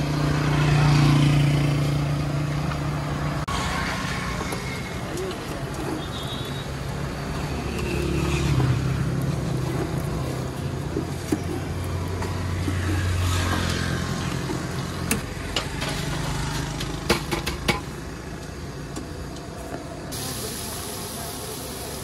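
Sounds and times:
motorcycles passing: 0:00.0 - 0:20.0
passing road vehicles: 0:00.0 - 0:20.2.

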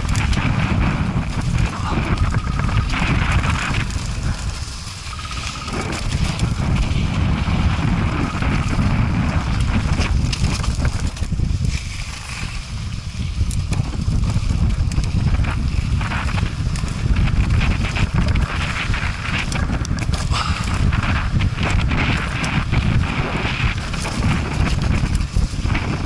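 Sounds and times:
bike knocks and rattles: 0:00.0 - 0:26.0
wind buffeting microphone: 0:00.0 - 0:26.0.

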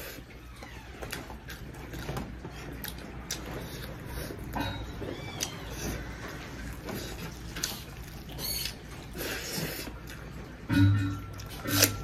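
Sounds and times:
wet chewing and mouth clicks: 0:00.0 - 0:12.0.

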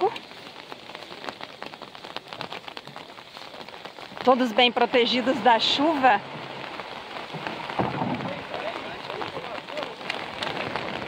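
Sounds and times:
rain ticking on an umbrella: 0:00.0 - 0:11.0
small waves washing on sand: 0:00.0 - 0:11.0.

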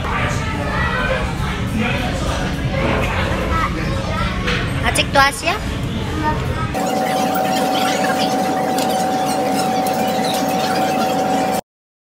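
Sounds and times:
restaurant background noise: 0:00.0 - 0:11.6
steady single-pitched whine: 0:06.8 - 0:11.6.

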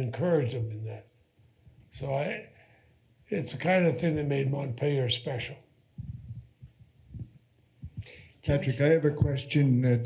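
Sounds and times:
microphone handling thumps: 0:05.9 - 0:09.5.

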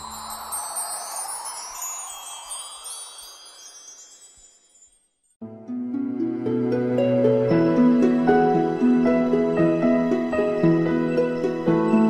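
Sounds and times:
shimmering high chimes: 0:00.0 - 0:05.4.

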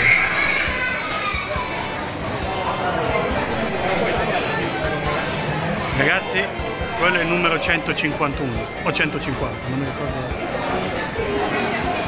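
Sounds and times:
indoor crowd chatter: 0:00.0 - 0:12.0.

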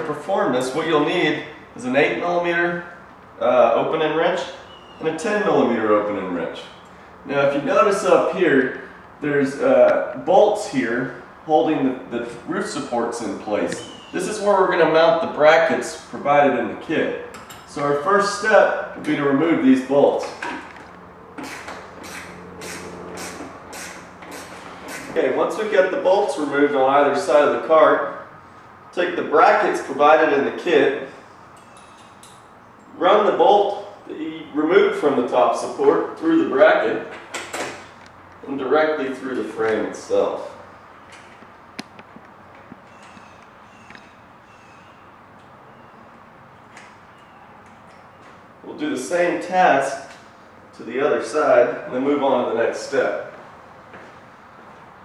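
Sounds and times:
steady low hum: 0:00.0 - 0:55.0
wrench scraping on bolt: 0:21.4 - 0:25.2.

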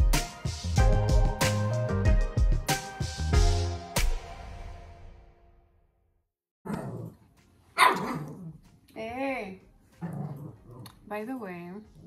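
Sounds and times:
dog barking: 0:07.8 - 0:08.3.

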